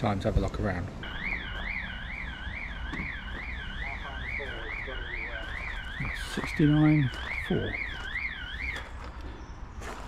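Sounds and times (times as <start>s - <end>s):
warbling electronic alarm: 1.0s - 8.8s.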